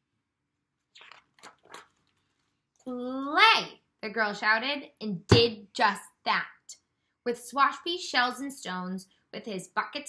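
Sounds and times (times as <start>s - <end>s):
book page turning: 0.9s - 2.6s.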